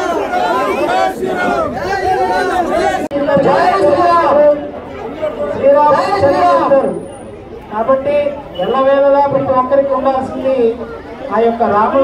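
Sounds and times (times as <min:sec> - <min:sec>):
crowd chanting: 0:00.0 - 0:04.3.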